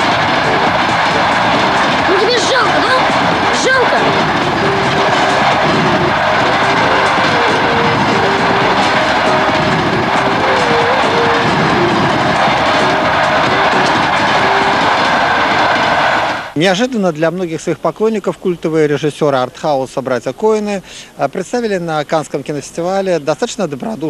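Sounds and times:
train running past: 0.0 - 18.6.

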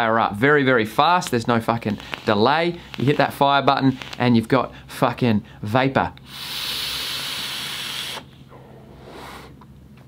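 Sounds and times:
vape draw hiss: 1.9 - 4.3, 6.2 - 8.4
breathy exhale hiss: 6.2 - 9.6.

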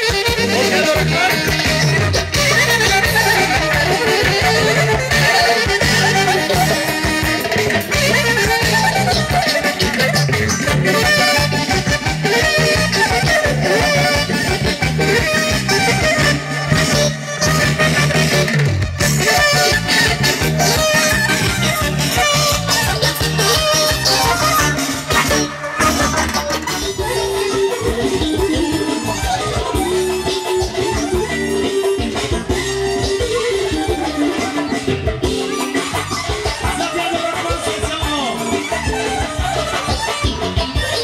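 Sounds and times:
electric guitar: 0.0 - 41.0
live band playing dance music: 0.0 - 41.0.

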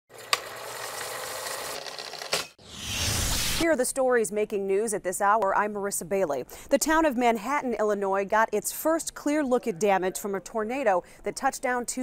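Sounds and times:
sharp hit: 2.6 - 3.6.

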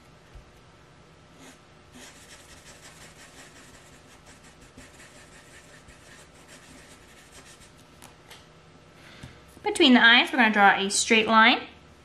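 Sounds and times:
marker scratching on paper: 1.4 - 7.8.

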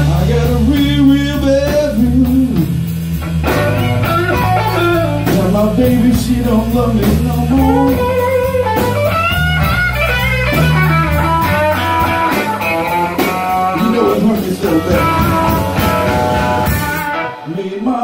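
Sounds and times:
electric bass: 0.0 - 17.7
drum kit: 0.0 - 18.0
electric guitar: 0.0 - 18.0.

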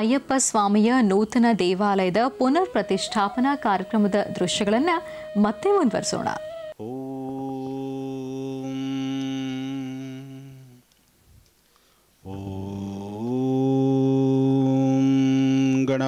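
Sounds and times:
man chanting: 6.8 - 10.8, 12.3 - 16.0.

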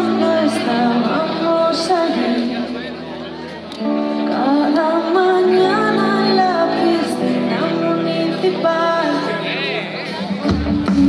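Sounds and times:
woman singing: 0.0 - 2.9, 4.1 - 9.6
live band playing: 0.0 - 11.0.

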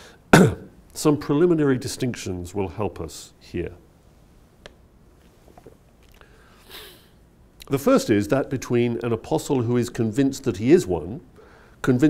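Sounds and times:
breathy hiss: 6.2 - 7.2, 11.4 - 11.8.

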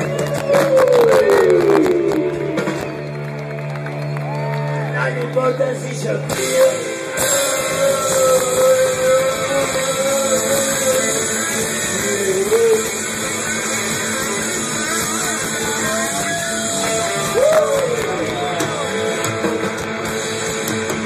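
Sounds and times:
electric guitar lead bending notes: 0.0 - 4.2, 5.3 - 21.0
live rock band: 0.0 - 21.0.

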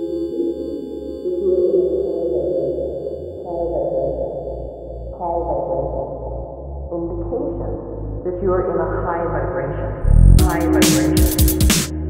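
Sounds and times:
ringing synth tones: 0.0 - 6.0
pulsing electronic bassline: 9.8 - 12.0
falling synth phrases: 10.0 - 10.9.

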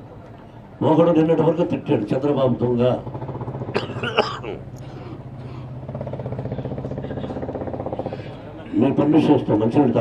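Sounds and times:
engine running steadily: 0.0 - 10.0.

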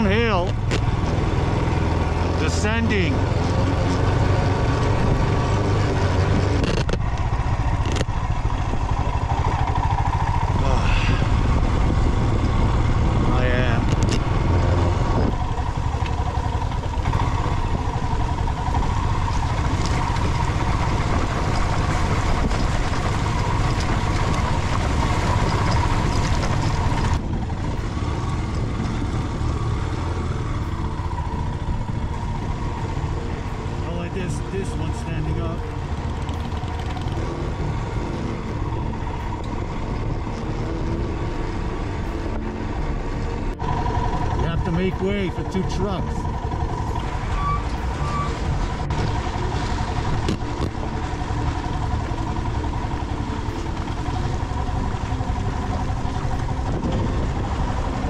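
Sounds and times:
motorcycle engine running: 0.0 - 58.0
wind rumble on microphone: 3.2 - 33.6, 46.2 - 58.0.

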